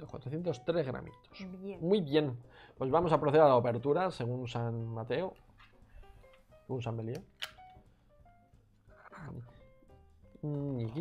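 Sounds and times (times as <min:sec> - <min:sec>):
plucked background music: 0:00.0 - 0:11.0.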